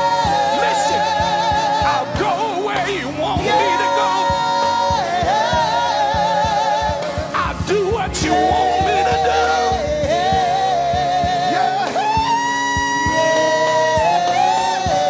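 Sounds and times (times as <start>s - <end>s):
group singing gospel music: 0.0s - 15.0s
musical accompaniment: 0.0s - 15.0s.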